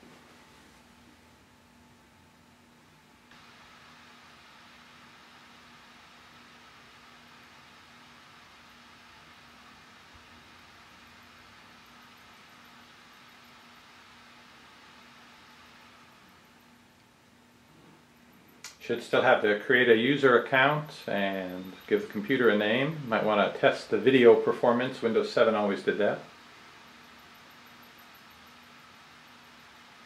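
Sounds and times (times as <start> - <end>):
faint low hum: 0.0 - 30.0
laptop whirring hiss: 0.0 - 30.0.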